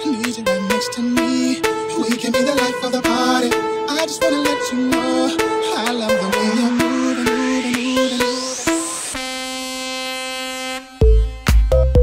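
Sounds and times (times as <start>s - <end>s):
held electronic horn-like tone: 0.6s - 12.0s.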